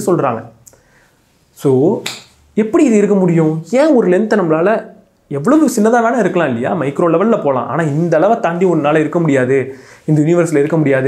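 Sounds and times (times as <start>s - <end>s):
man talking: 0.0s - 0.6s, 1.5s - 11.0s.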